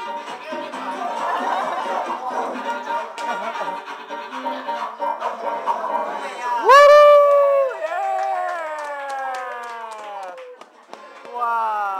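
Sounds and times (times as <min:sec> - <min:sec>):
person whooping: 0:06.6 - 0:10.3.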